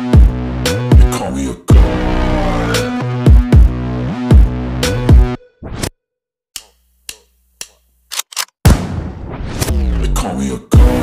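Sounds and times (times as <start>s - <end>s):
electronic music beat: 0.0s - 5.4s, 10.8s - 11.0s.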